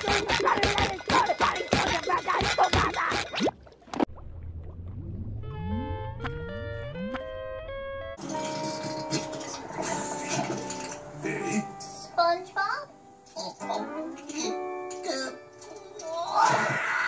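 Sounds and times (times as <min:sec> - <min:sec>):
cartoon background music: 0:05.4 - 0:17.0
cartoon characters wailing: 0:16.0 - 0:17.0.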